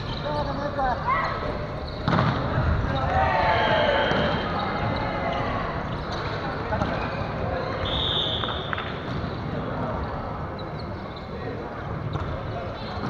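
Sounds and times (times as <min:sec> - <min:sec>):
players calling and chatting: 0:00.0 - 0:13.0
thuds on wooden court floor: 0:02.0 - 0:02.8.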